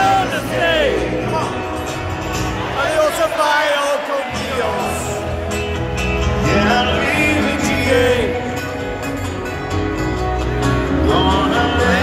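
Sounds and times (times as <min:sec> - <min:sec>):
country band playing live: 0:00.0 - 0:12.0
person singing: 0:06.3 - 0:09.0, 0:10.7 - 0:12.0.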